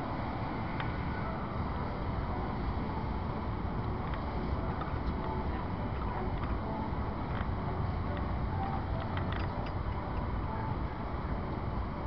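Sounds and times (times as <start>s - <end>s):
diesel locomotive rumbling: 0.0s - 12.0s
metallic clicks and creaks: 3.8s - 10.4s.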